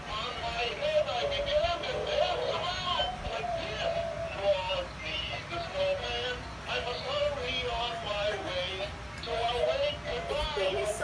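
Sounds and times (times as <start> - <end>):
music backing from small speaker: 0.1 - 11.0
toy singing in synthesized voice: 0.1 - 11.0.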